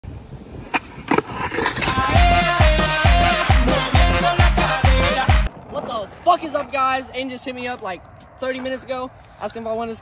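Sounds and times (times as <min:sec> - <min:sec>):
skateboard rolling rumble: 0:00.2 - 0:02.6, 0:04.7 - 0:07.6.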